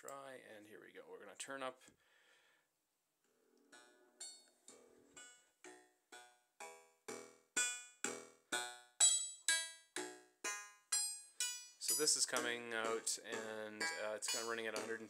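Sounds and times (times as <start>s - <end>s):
synthesizer plucked notes: 3.6s - 15.0s.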